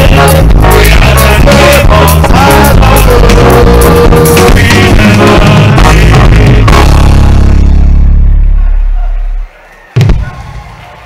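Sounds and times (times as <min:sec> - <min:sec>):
band holding low chord: 0:00.0 - 0:09.5.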